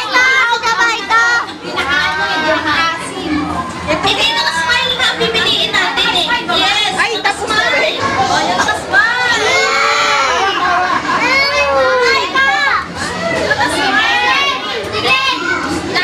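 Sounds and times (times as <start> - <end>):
children calling and chattering: 0.0 - 16.0.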